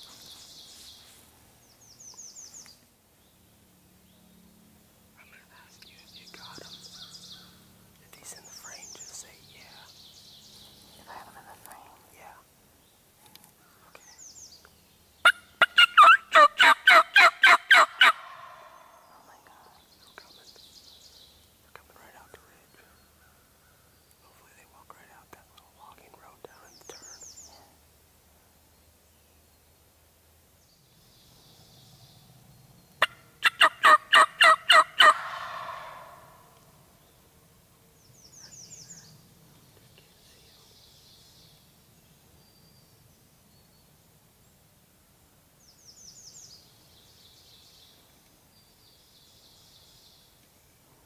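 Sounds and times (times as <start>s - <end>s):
turkey calling: 15.2s - 18.8s, 33.0s - 36.4s.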